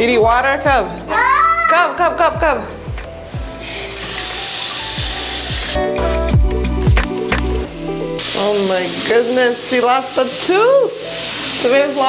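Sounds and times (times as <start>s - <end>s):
music with low beat: 0.0s - 1.4s, 2.0s - 8.2s.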